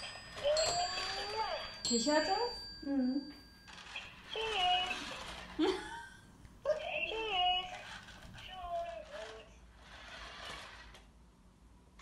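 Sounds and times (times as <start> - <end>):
toy robot chirpy voice sounds: 4.3 - 5.4, 6.8 - 9.5.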